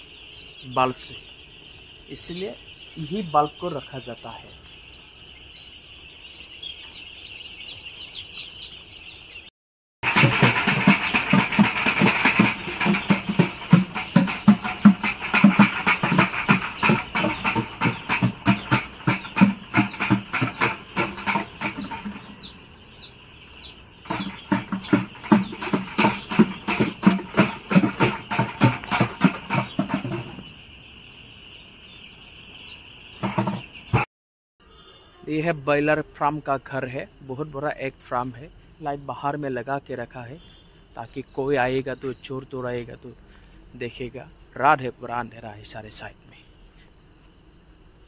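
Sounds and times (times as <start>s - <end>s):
chicks peeping: 0.0s - 34.0s
loud fast rhythmic beat: 10.0s - 22.5s, 24.0s - 30.4s.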